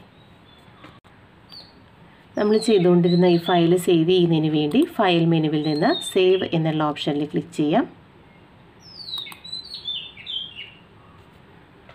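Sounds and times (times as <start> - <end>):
bird chirping: 0.0 - 7.4, 8.2 - 11.3.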